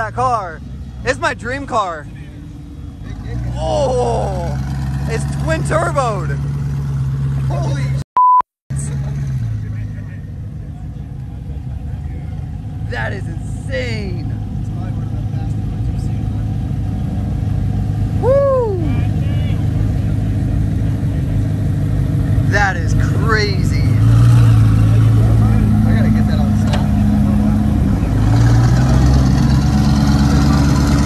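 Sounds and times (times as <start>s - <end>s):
car engine idling and revving: 0.0s - 8.0s, 8.7s - 31.0s
people whooping and shouting: 18.2s - 19.6s.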